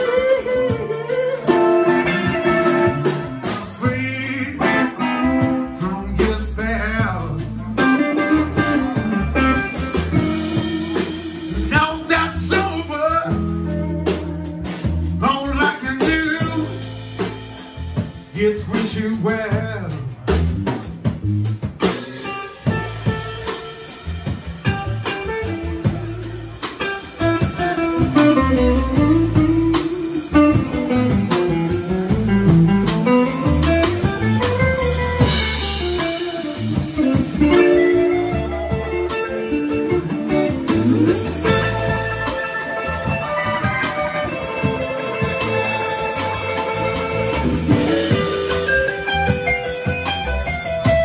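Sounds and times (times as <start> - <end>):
bass guitar: 0.0 - 51.0
drum kit: 0.0 - 51.0
electric guitar lead lines: 0.0 - 51.0.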